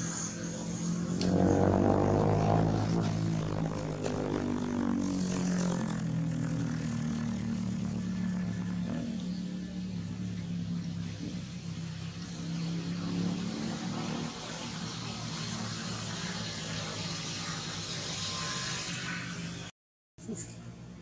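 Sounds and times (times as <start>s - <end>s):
engine droning: 0.0s - 19.7s
steady hiss: 11.4s - 19.5s.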